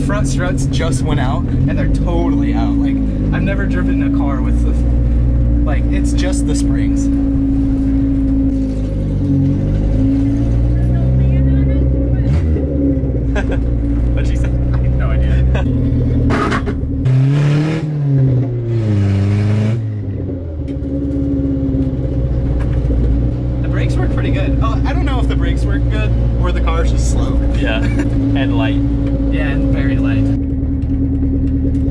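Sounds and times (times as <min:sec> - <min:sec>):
car engine with open exhaust: 0:00.0 - 0:31.9.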